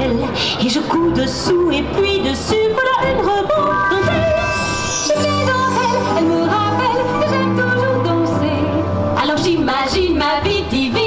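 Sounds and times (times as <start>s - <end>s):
woman singing with vibrato: 0.0s - 11.0s
backing music of held chords: 1.4s - 11.0s.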